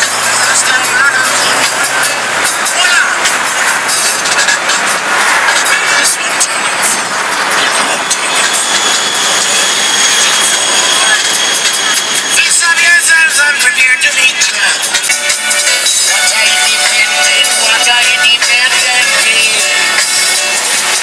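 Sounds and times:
traffic and road noise: 0.0s - 21.0s
voices: 0.0s - 21.0s.

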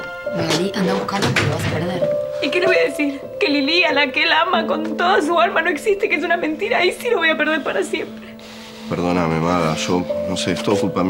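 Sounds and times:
soft background music: 0.0s - 11.0s
woman speaking: 0.4s - 8.1s.

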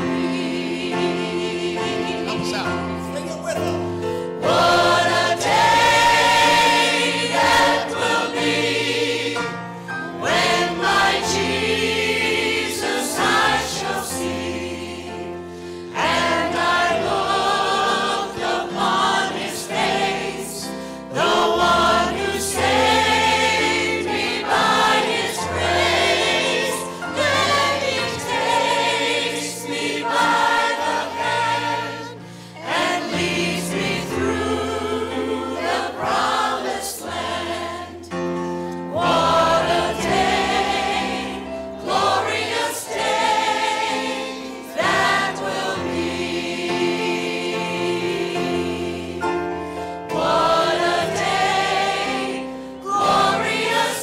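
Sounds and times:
choir singing a gospel hymn: 0.0s - 54.0s
piano accompaniment: 0.0s - 54.0s.

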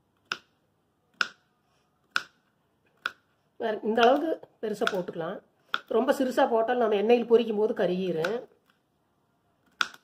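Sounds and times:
knife chopping on wooden board: 4.8s - 5.1s, 9.7s - 10.0s.

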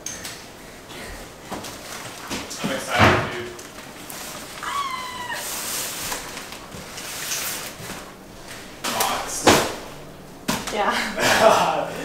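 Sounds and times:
cardboard rustling: 1.5s - 9.9s
cat meowing: 4.6s - 5.7s.

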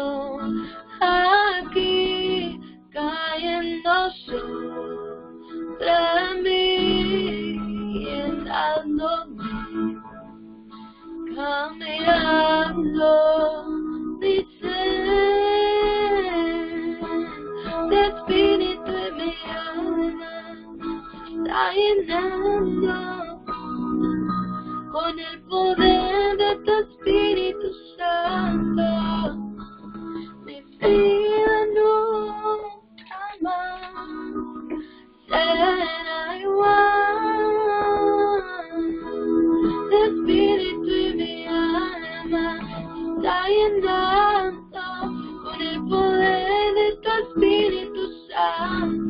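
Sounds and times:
person singing: 0.0s - 5.0s, 5.6s - 10.0s, 10.8s - 49.0s
instrumental accompaniment: 0.0s - 49.0s.

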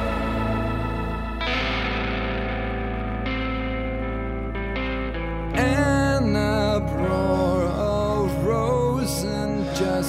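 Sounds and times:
electric guitar chord ringing: 0.0s - 10.0s.

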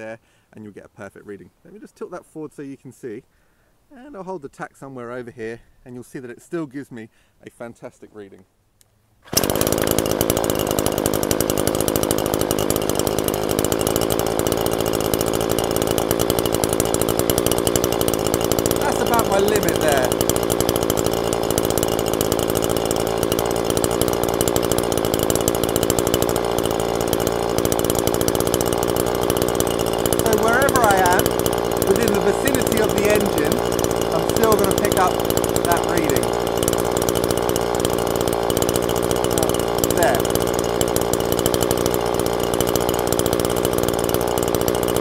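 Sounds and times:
string trimmer engine running: 9.2s - 45.0s.

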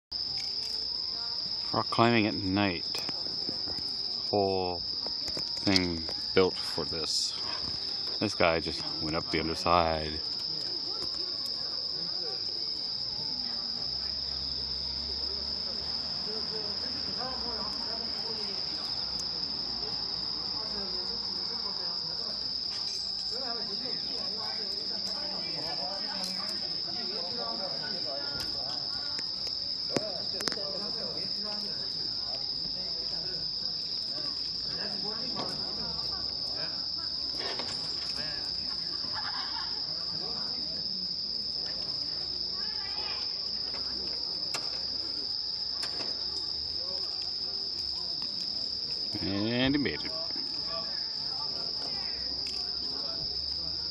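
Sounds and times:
crickets chirring: 0.1s - 53.9s
faint murmuring voices: 0.1s - 53.9s.

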